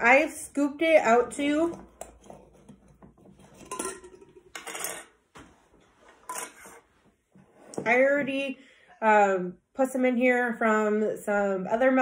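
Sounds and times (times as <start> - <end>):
glass jars clinking and scraping: 1.4 - 5.2, 6.2 - 6.9.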